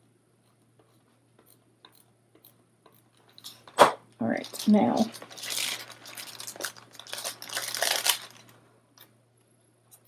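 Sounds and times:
paper sheets rustling: 4.4 - 8.6.

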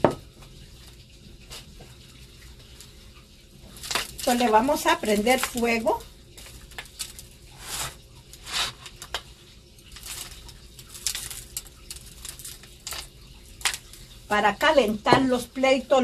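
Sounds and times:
powder pattering on foil tray: 3.6 - 15.6
foil crinkling: 3.7 - 14.3.

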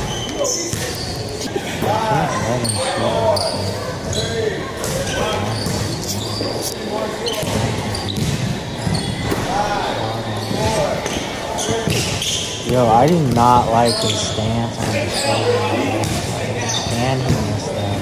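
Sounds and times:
echoing indistinct voices: 0.0 - 18.0.

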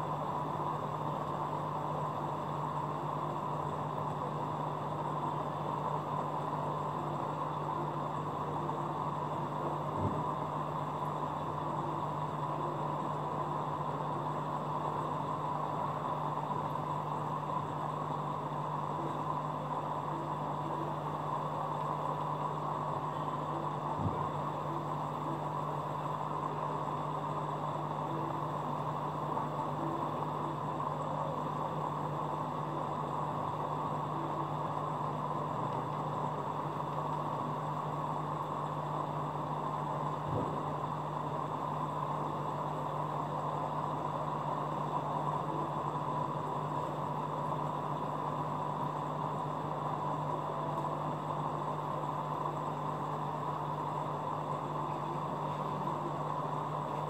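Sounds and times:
aquarium equipment humming: 0.0 - 57.0.

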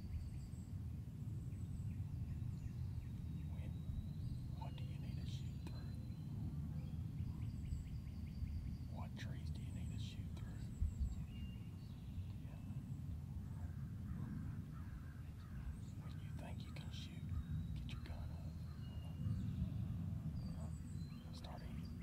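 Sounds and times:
small birds chirping: 0.0 - 22.0
wind rumble on microphone: 0.0 - 22.0.

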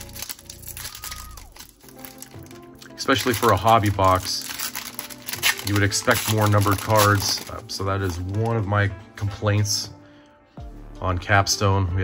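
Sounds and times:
foil wrapper crinkling and tearing: 0.0 - 8.7
soft background music: 0.0 - 12.0.

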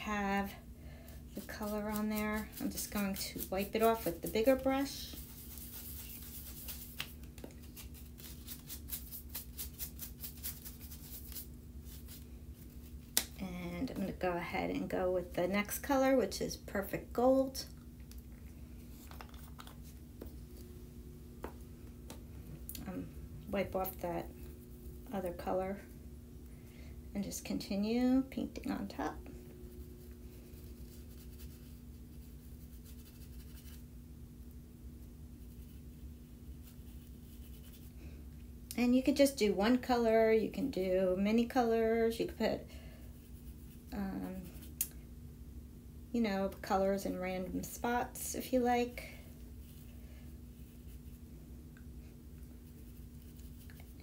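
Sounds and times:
faint steady hum: 0.0 - 54.0
bristle brush sweeping over cardstock: 1.4 - 13.1, 28.6 - 33.8, 35.3 - 38.0, 43.1 - 44.8, 48.8 - 51.3, 52.4 - 54.0
paintbrush brushing softly: 29.1 - 33.8, 48.9 - 51.3, 52.0 - 54.0.

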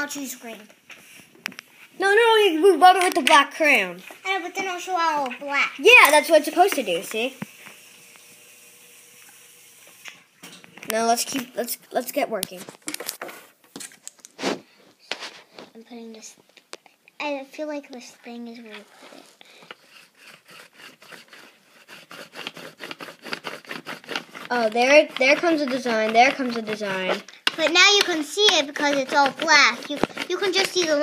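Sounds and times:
crayon scratching on paper: 2.0 - 7.8, 18.6 - 31.0.

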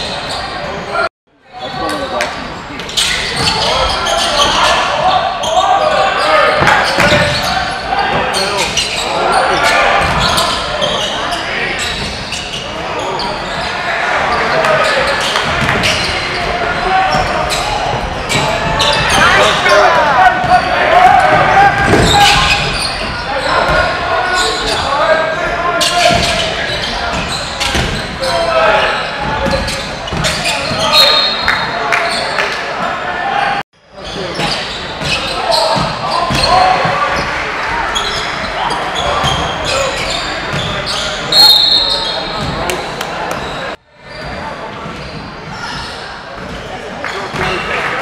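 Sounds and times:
voices calling out: 0.0 - 48.0.

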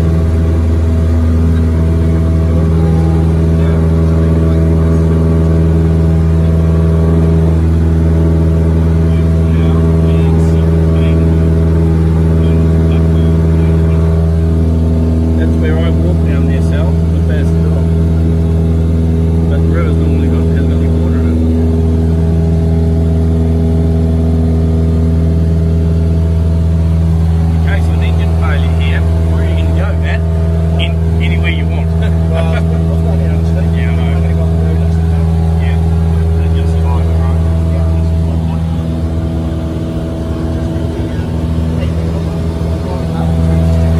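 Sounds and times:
light aircraft engine droning: 0.0 - 43.9.

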